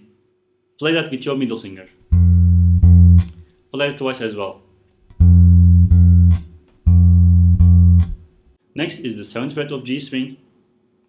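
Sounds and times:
electric bass notes: 0:02.1 - 0:03.5, 0:05.1 - 0:08.4.

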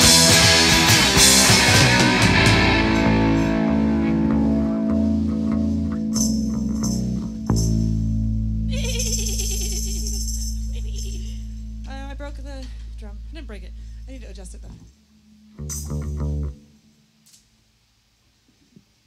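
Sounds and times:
band chord on electric guitar: 0:00.0 - 0:06.2, 0:11.4 - 0:14.7
low amplifier hum: 0:00.0 - 0:19.0.

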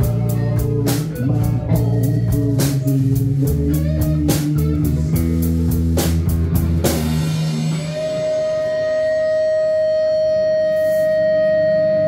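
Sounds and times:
faint band backing: 0:00.0 - 0:12.0
electric guitar sustained note: 0:06.4 - 0:12.0.

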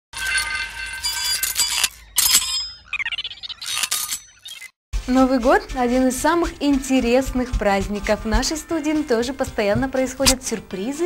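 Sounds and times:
bright chiming and jingling: 0:00.2 - 0:04.6.

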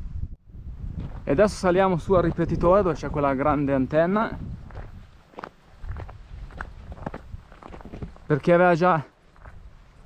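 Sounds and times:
wind rumble on microphone: 0:00.0 - 0:08.3, 0:09.4 - 0:10.0
footsteps on trail: 0:00.9 - 0:10.0.

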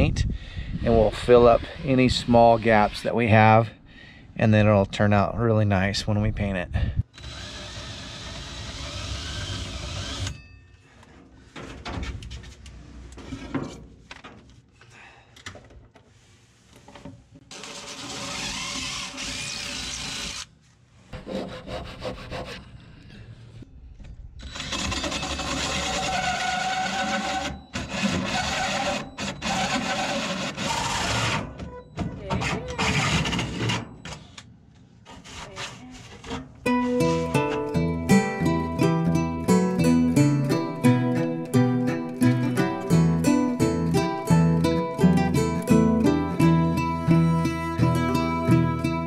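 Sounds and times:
drill with hole saw cutting plywood: 0:07.2 - 0:10.4, 0:17.5 - 0:20.5, 0:24.4 - 0:31.5, 0:32.7 - 0:33.8.

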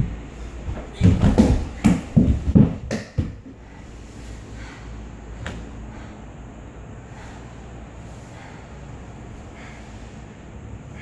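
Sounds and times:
body rolling on concrete floor: 0:00.0 - 0:04.0.

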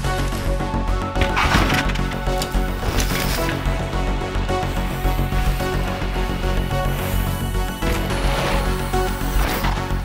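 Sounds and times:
soundtrack music with low bass: 0:00.0 - 0:10.0.

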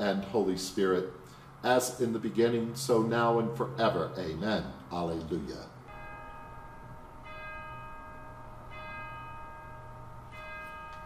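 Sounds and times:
bell strokes ringing: 0:05.9 - 0:11.0.

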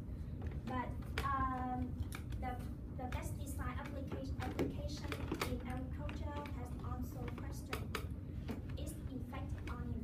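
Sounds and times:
woman speaking: 0:00.6 - 0:10.0.

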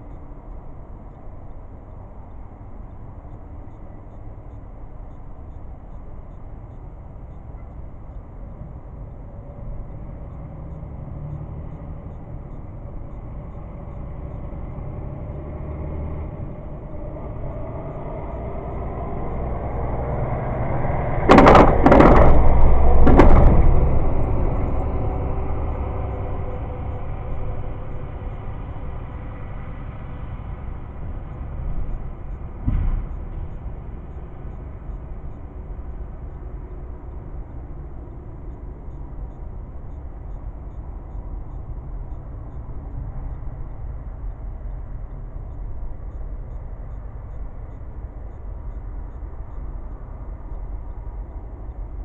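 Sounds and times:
freight train rumbling: 0:18.7 - 0:31.9
wheels banging on rail: 0:21.0 - 0:25.2.

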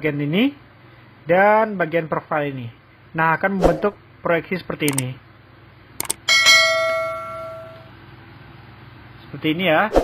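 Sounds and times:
mouse clicks: 0:06.0 - 0:06.2
notification bell ding: 0:06.0 - 0:07.9.

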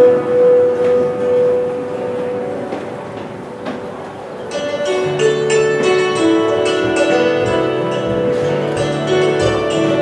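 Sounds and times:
hammered dulcimer: 0:04.4 - 0:10.0
acoustic guitar: 0:04.5 - 0:10.0.

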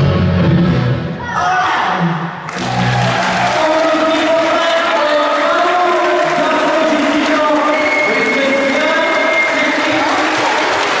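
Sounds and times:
audience applauding: 0:02.5 - 0:11.0.

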